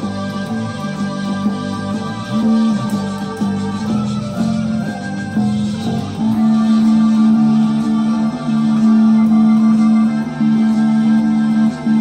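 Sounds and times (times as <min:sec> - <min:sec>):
electric bass riff: 0:00.0 - 0:12.0.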